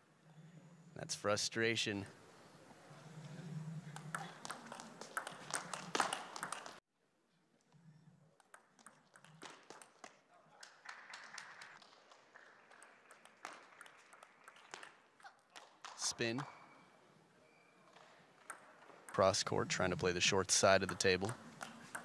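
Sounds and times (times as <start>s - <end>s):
crowd applause: 4.3s - 6.8s, 10.5s - 14.9s
table tennis ball ticking: 18.4s - 22.0s.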